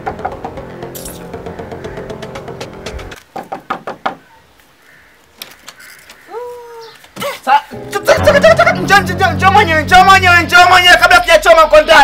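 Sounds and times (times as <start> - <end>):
knocking on wooden door: 3.4 - 4.2.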